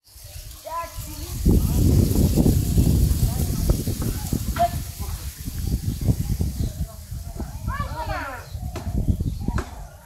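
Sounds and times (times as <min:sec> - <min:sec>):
wind buffeting microphone: 0:00.1 - 0:10.0
faint voices: 0:00.3 - 0:10.0.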